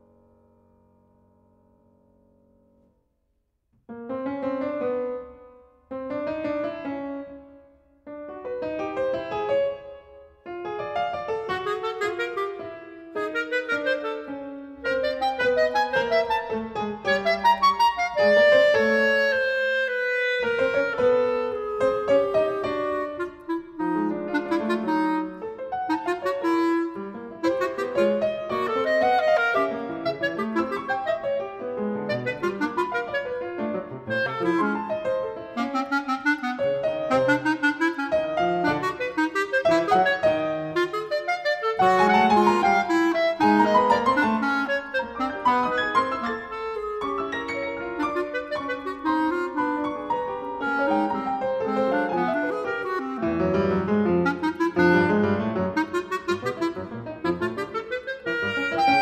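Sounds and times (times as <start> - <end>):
piano: 0.0 - 59.0
clarinet: 3.9 - 59.0.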